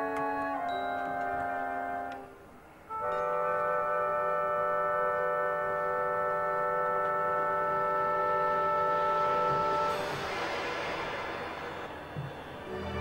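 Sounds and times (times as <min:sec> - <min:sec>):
orchestra and synthesizer chord: 0:02.9 - 0:13.0
hissing wash: 0:08.1 - 0:13.0.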